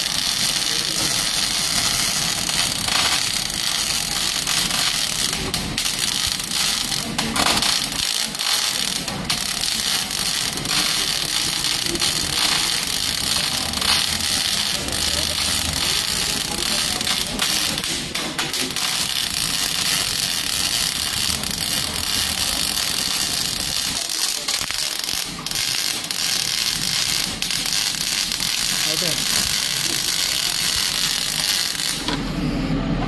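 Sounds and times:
welding arc crackling: 0.0 - 32.3.

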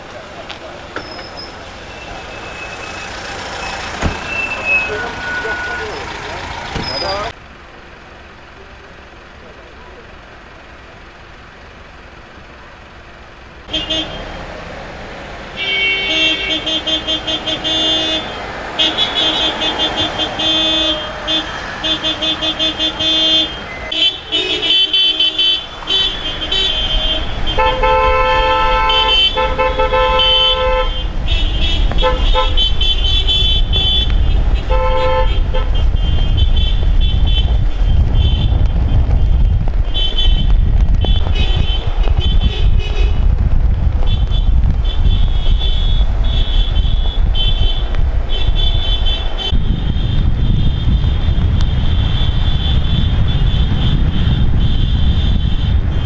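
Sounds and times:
car horns honking: 0.0 - 7.4, 13.6 - 14.5, 15.4 - 43.4, 44.0 - 56.0
voices: 0.0 - 11.5
idling traffic: 0.0 - 56.0.

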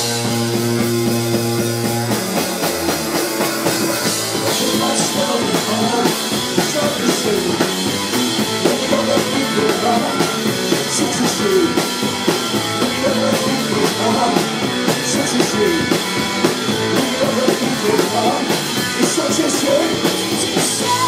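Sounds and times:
drum kit beat: 0.0 - 21.0
live punk rock band playing: 0.0 - 21.0.

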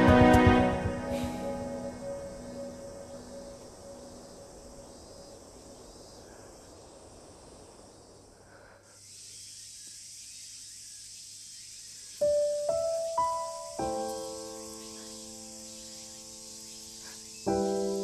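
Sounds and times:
soundtrack music: 0.0 - 3.5
insects hissing: 0.0 - 18.0.

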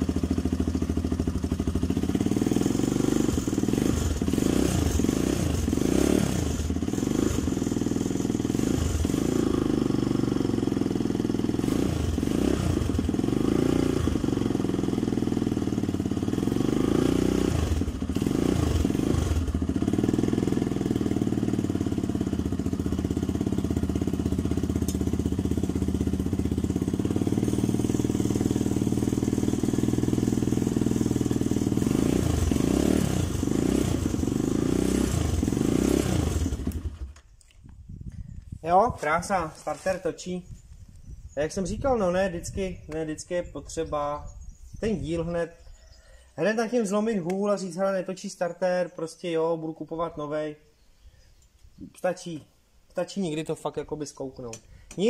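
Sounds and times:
motorbike engine revving: 0.0 - 37.3.

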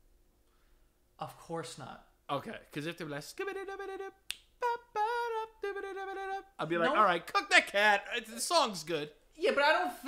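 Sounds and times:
man singing: 2.9 - 7.4
finger snap: 4.2 - 4.6.

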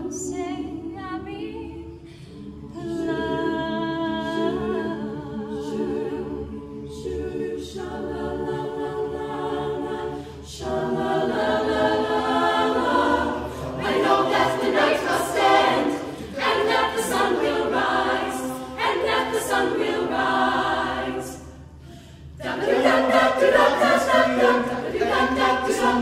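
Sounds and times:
a cappella group singing chords: 0.0 - 26.0.

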